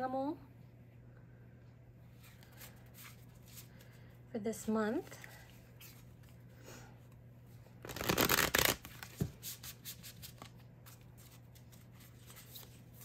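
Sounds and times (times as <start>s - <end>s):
cards being shuffled: 7.8s - 13.0s.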